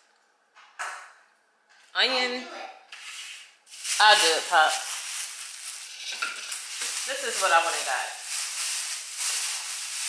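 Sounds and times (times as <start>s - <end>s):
plastic bag rustling: 3.0s - 10.0s.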